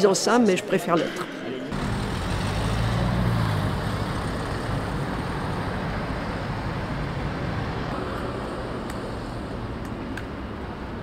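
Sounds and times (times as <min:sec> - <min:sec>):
steady low traffic rumble: 0:01.0 - 0:11.0
vehicle engine hum: 0:01.7 - 0:11.0.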